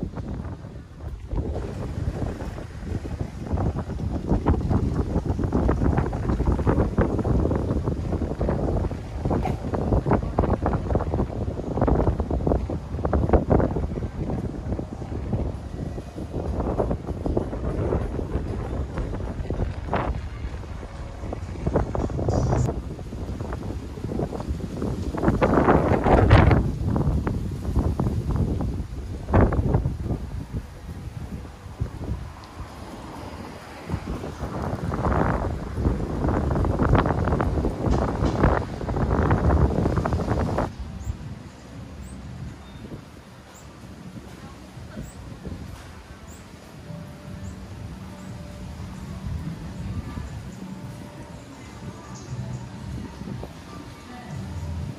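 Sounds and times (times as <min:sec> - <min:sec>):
gusty wind buffeting microphone: 0:00.0 - 0:54.9.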